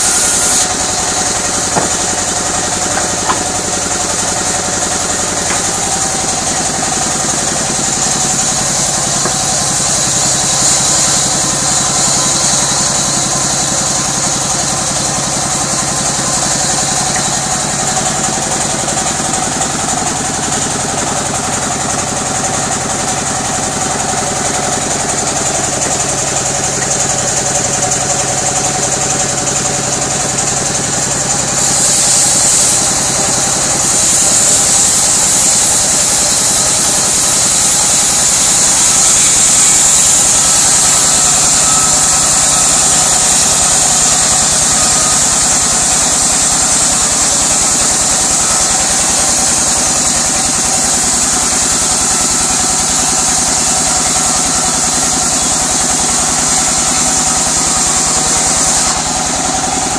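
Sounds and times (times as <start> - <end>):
band saw cutting timber: 0.0 - 59.9.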